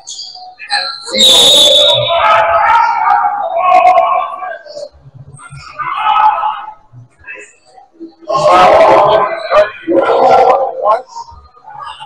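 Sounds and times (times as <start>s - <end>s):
referee's whistle blast: 1.0s - 2.5s
players shouting: 1.1s - 6.8s, 8.3s - 11.1s.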